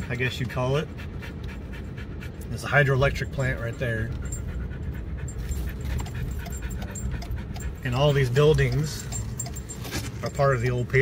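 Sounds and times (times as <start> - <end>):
dog panting: 0.0 - 10.7
car road and engine rumble: 0.0 - 11.0.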